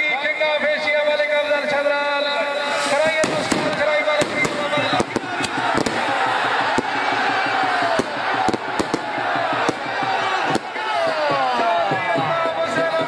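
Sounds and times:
crowd shouting: 0:00.0 - 0:13.0
firecrackers cracking: 0:02.5 - 0:11.5.

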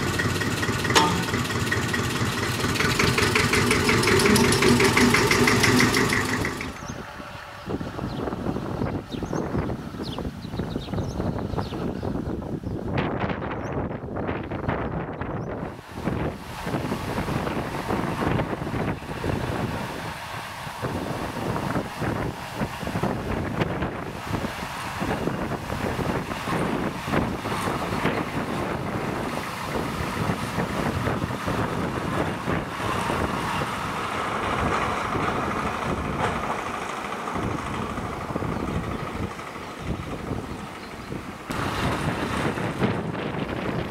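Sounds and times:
diesel locomotive running: 0:00.0 - 0:43.9
wind buffeting microphone: 0:00.0 - 0:43.9.

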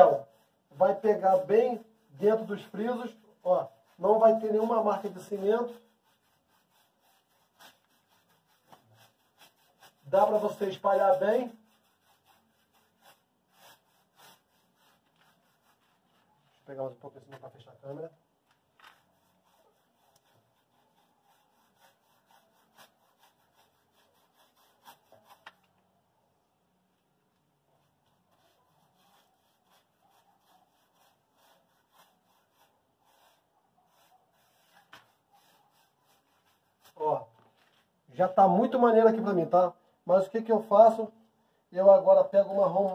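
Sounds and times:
paintbrush scratching on wall: 0:00.0 - 0:18.1, 0:18.8 - 0:25.8, 0:27.6 - 0:41.1, 0:41.8 - 0:42.9.

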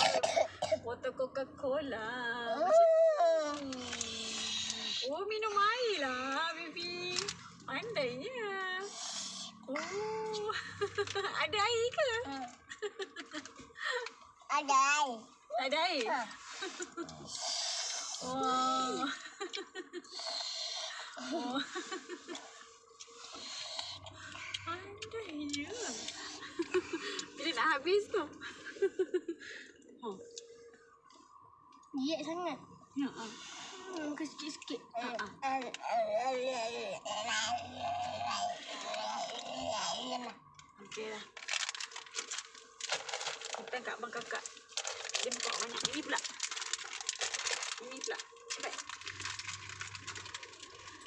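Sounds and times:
child's high voice: 0:14.5 - 0:15.2
plastic packet crinkling: 0:40.6 - 0:51.0.

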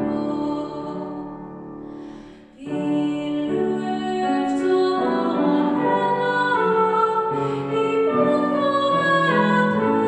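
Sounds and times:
woman singing a hymn: 0:00.0 - 0:01.5, 0:02.6 - 0:10.0
grand piano accompaniment: 0:00.0 - 0:10.0.

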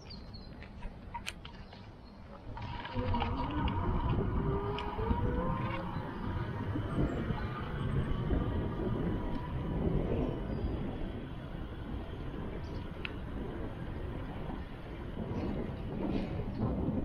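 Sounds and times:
vehicle road rumble: 0:00.0 - 0:17.0
wind buffeting microphone: 0:00.0 - 0:17.0
rising whine: 0:02.6 - 0:15.8.

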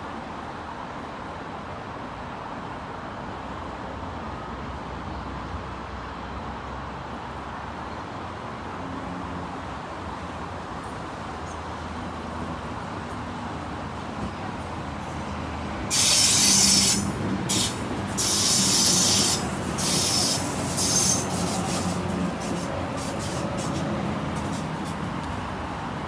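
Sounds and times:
train rumbling: 0:09.6 - 0:26.0
brakes hissing: 0:15.9 - 0:26.0.

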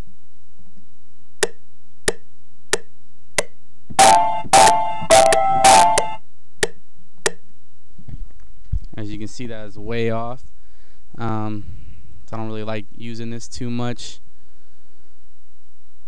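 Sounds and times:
metronome ticking: 0:01.4 - 0:02.2, 0:02.8 - 0:07.4
chopped record samples: 0:02.8 - 0:07.4.

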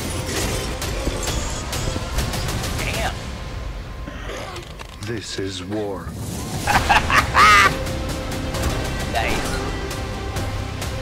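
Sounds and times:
trailer music: 0:00.0 - 0:11.0
man laughing loudly: 0:06.7 - 0:07.8.

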